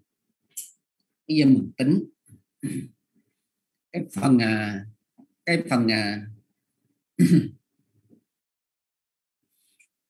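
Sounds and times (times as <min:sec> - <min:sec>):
person speaking: 0:00.5 - 0:03.0, 0:03.9 - 0:06.5
person clearing throat: 0:07.2 - 0:07.6.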